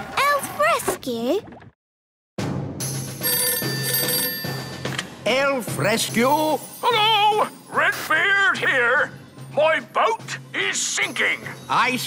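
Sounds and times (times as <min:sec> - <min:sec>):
cartoon telephone ringing: 0:03.2 - 0:05.0.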